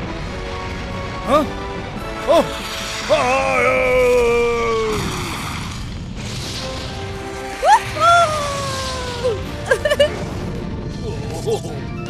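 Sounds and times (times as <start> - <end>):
cartoon soundtrack music: 0.0 - 5.4, 6.5 - 12.0
rushing noise burst: 0.1 - 10.9.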